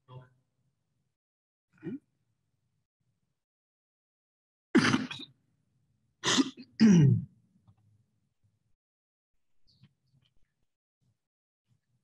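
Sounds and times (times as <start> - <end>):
person coughing: 4.8 - 5.3, 6.2 - 7.3.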